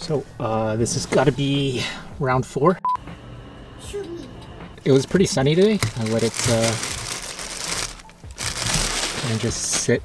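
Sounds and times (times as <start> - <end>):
plastic bag rustling against glass: 5.4 - 10.0.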